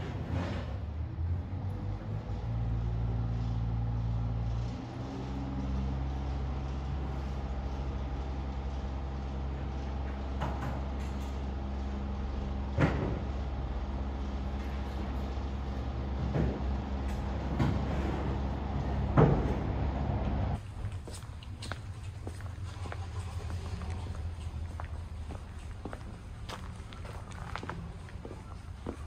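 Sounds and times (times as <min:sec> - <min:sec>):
large engine humming: 0:00.0 - 0:29.0.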